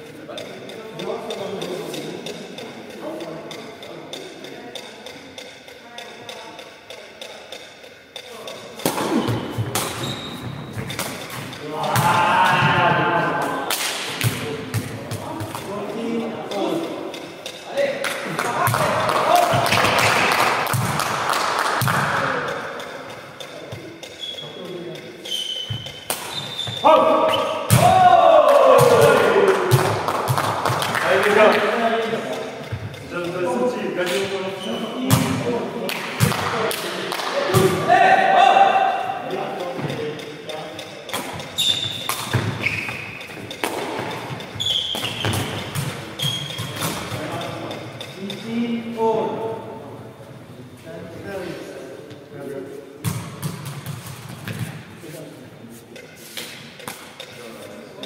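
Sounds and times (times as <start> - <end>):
players calling and shouting: 0.3 - 49.8.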